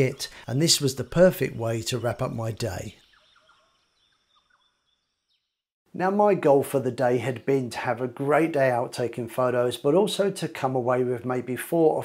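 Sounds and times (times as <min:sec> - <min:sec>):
faint outdoor ambience: 0:00.0 - 0:03.7
faint bird chirps: 0:00.0 - 0:05.7.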